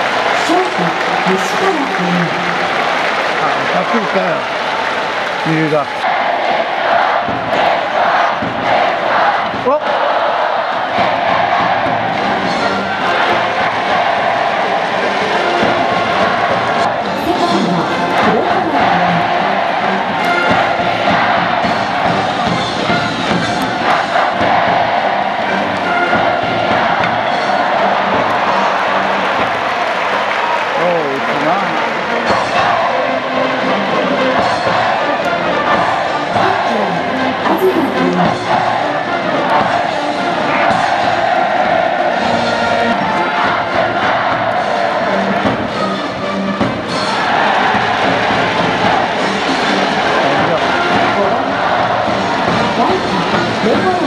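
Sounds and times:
fans chanting and cheering: 0.0s - 54.0s
stadium crowd noise: 0.0s - 54.0s
brass band playing: 11.0s - 54.0s.

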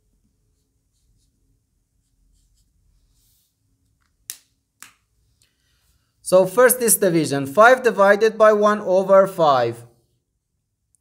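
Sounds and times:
marker scratching on whiteboard: 0.4s - 3.6s.

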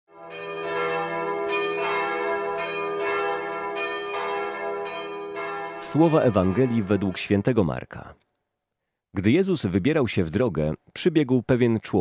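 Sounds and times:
bells ringing: 0.1s - 7.5s.

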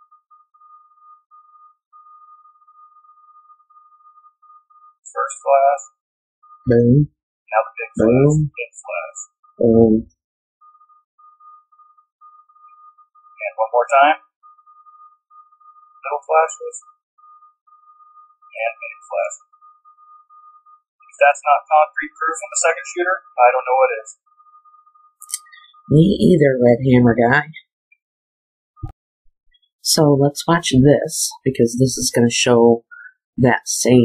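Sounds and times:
faint electronic tone: 0.0s - 5.8s, 10.6s - 26.2s.

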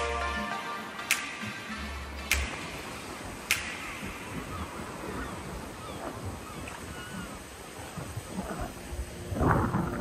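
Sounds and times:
surf washing up beach: 0.0s - 10.0s
wind buffeting microphone: 1.2s - 10.0s.

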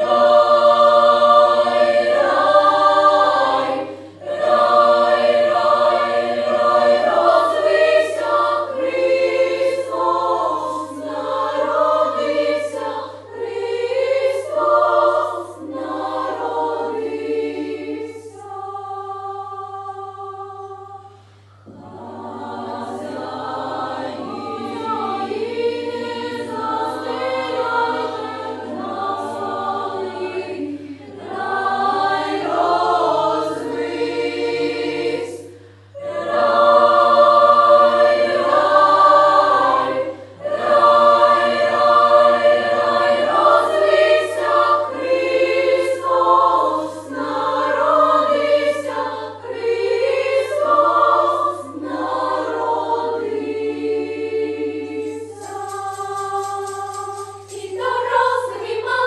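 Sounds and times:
children's choir singing carols: 0.0s - 59.0s.

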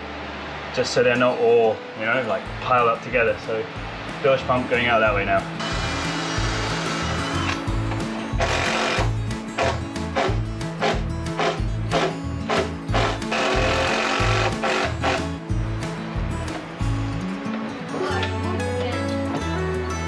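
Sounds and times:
background music with steady beat: 2.3s - 20.0s
cordless drill driving screws: 5.7s - 7.6s, 8.4s - 9.8s, 11.4s - 15.3s.

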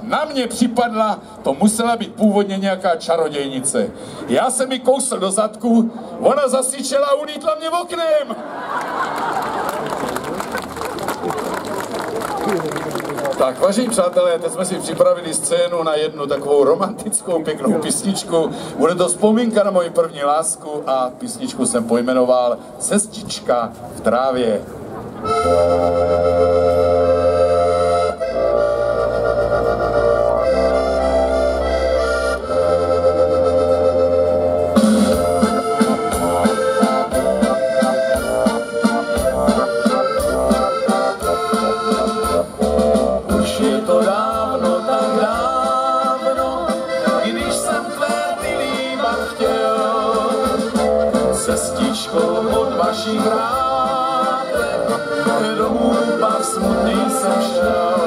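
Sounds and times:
accordions playing: 25.1s - 58.0s
electronic keyboard playing: 25.2s - 58.0s.

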